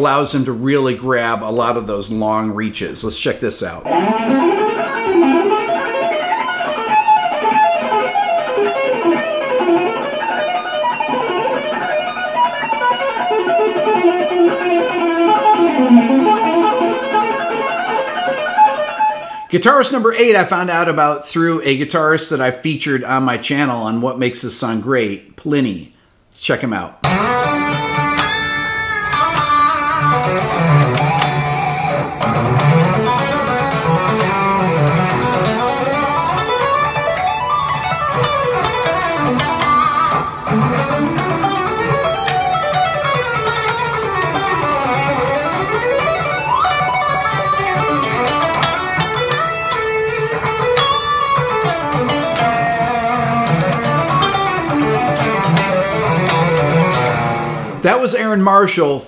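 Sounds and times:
electric guitar melodic runs: 3.8s - 19.5s, 27.0s - 58.0s.

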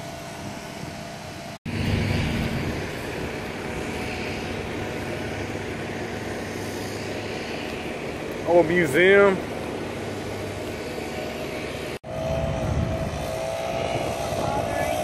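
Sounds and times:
car engine humming: 0.0s - 15.0s
road and cabin noise: 0.0s - 15.0s.

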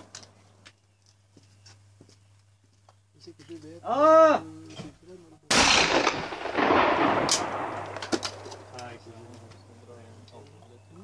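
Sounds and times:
shotgun blast echoing: 5.5s - 8.9s
shotgun opening metallic clicks: 7.2s - 8.9s.

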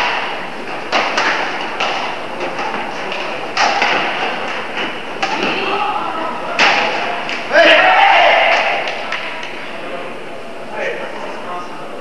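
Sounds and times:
rackets hitting shuttlecocks: 0.0s - 7.5s.

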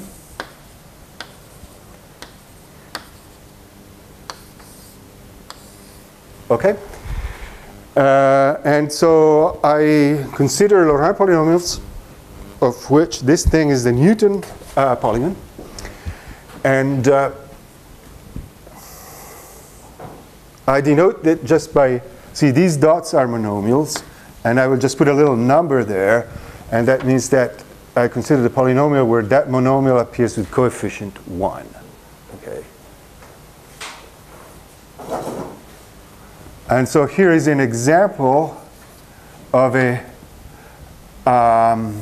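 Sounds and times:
low steady hum: 0.0s - 42.0s
chalk tapping on blackboard: 0.1s - 0.6s, 1.2s - 3.4s, 4.2s - 6.1s
chalk scraping: 1.2s - 3.5s, 4.3s - 6.2s
person sniffing: 7.0s - 7.8s, 18.7s - 20.0s.

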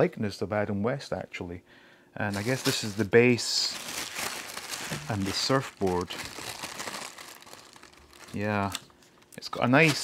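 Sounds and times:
plastic bag crinkling: 2.3s - 10.0s.

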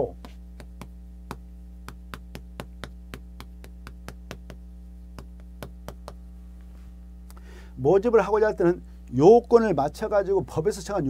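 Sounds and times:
chalk tapping on blackboard: 0.0s - 6.2s
steady low hum: 0.0s - 11.0s.

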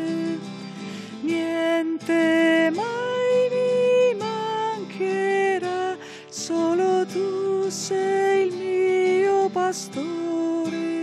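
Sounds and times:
person singing a hymn: 0.0s - 0.4s, 1.2s - 11.0s.

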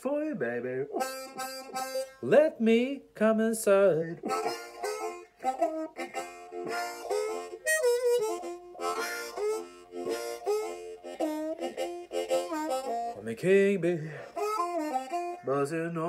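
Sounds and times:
harmonica blues phrases: 0.0s - 16.0s.

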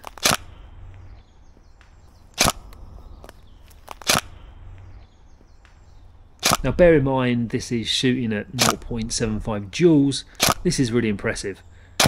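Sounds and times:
airsoft gun shots clacking: 0.0s - 0.5s, 1.8s - 2.8s, 3.8s - 4.4s, 6.4s - 6.8s, 8.6s - 9.2s, 10.4s - 10.8s.

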